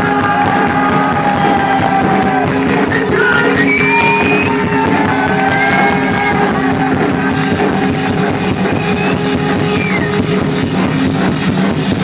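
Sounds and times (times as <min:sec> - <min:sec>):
electric guitar: 0:00.0 - 0:12.0
live rock band playing: 0:00.0 - 0:12.0.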